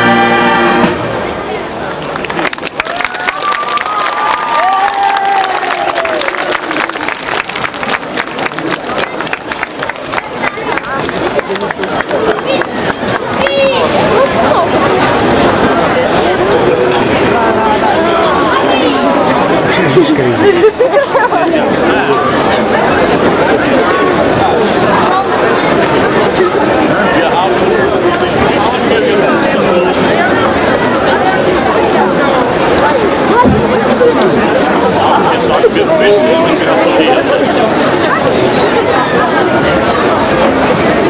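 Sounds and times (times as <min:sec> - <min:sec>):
crowd chatter: 0:00.0 - 0:41.0.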